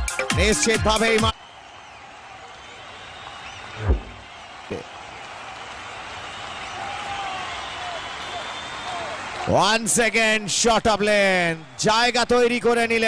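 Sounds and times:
crowd chatter and cheering: 0:00.0 - 0:13.0.

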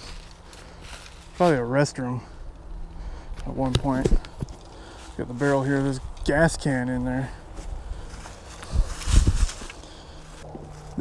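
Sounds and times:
footsteps on dry leaves: 0:00.0 - 0:06.3, 0:06.9 - 0:11.0.

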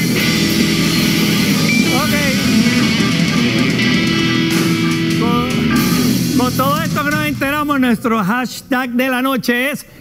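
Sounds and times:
rock music with electric guitar: 0:00.0 - 0:07.9.

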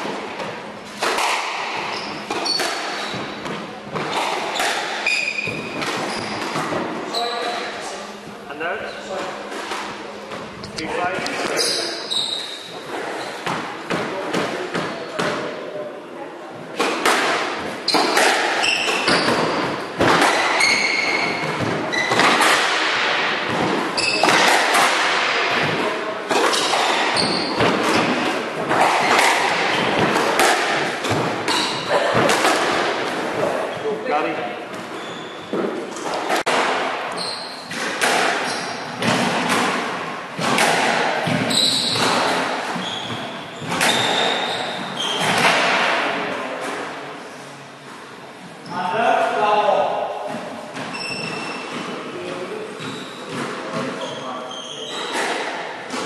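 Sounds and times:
shoes squeaking on wooden floor: 0:01.2 - 0:13.6, 0:17.8 - 0:22.5, 0:23.9 - 0:24.6, 0:26.4 - 0:32.1, 0:34.7 - 0:36.5, 0:37.1 - 0:39.0, 0:41.3 - 0:45.5, 0:50.8 - 0:55.3.

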